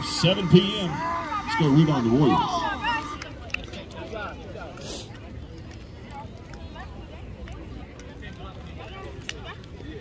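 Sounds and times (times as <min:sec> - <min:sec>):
young voices talking: 0:00.0 - 0:10.0.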